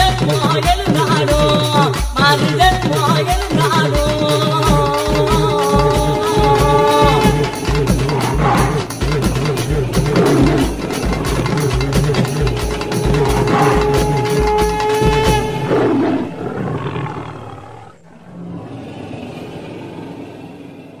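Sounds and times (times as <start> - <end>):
long held note: 4.0 - 16.4
low drum strokes: 4.8 - 16.4.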